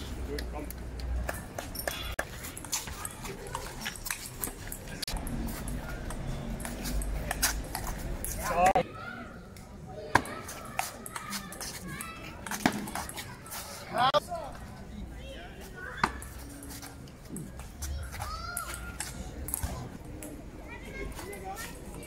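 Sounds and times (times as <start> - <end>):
voices of people: 0.0 - 22.0.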